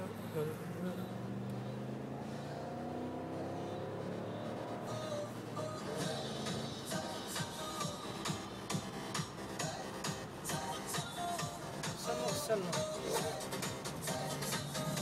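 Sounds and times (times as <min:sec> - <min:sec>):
music from car stereo: 0:00.0 - 0:15.0.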